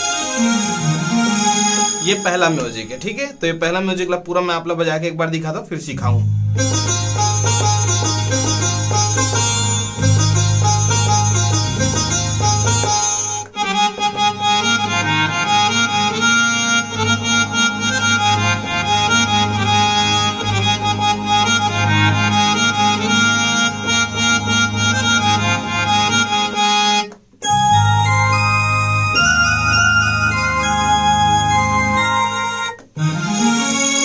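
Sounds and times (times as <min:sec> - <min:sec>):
synthesizer melody: 0:00.0 - 0:03.9, 0:06.0 - 0:34.0
synthesizer harmonium chords: 0:00.0 - 0:04.3, 0:05.8 - 0:34.0.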